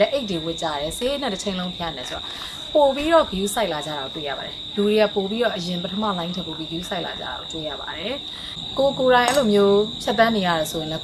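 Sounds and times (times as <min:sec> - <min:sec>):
insects droning: 0:00.0 - 0:11.0
woman speaking: 0:00.0 - 0:11.0.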